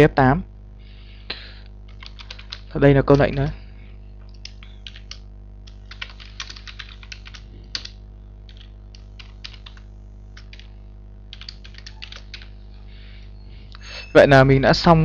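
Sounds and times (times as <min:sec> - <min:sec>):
low electrical hum: 0:00.0 - 0:15.0
typing on a keyboard: 0:01.9 - 0:03.4, 0:04.3 - 0:09.8, 0:10.4 - 0:10.7, 0:11.3 - 0:12.5.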